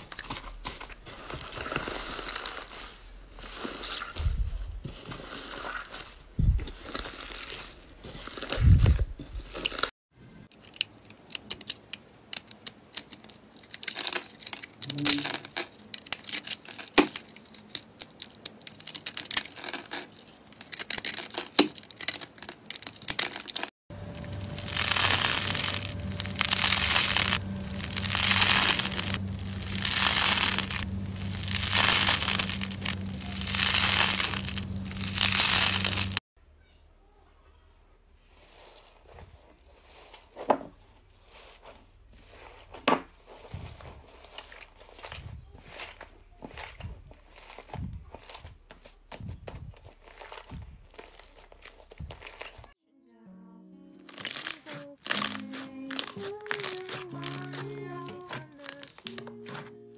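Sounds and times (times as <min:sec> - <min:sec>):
crumbly material crunching and tearing: 0:00.0 - 0:10.0, 0:10.6 - 0:36.2, 0:38.2 - 0:52.8, 0:54.0 - 0:59.7
steady low hum: 0:23.9 - 0:36.2
hands squishing slime: 0:54.1 - 0:59.6.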